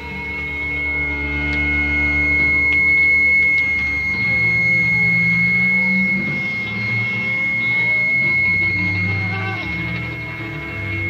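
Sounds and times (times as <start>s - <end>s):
bending pitches: 0.0s - 11.0s
high steady tone: 0.0s - 11.0s
psychedelic rock improvisation: 0.0s - 11.0s
sustained low notes: 0.0s - 11.0s.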